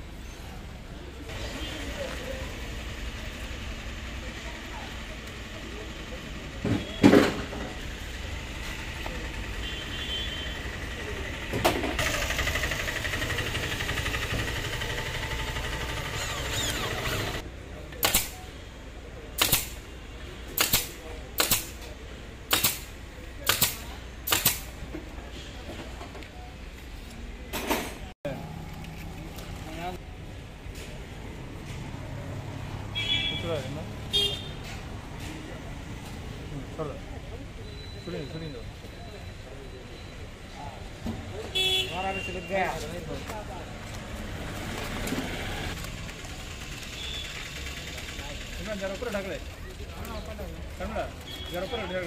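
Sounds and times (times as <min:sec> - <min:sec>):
electric hand drill running: 0:12.0 - 0:17.4.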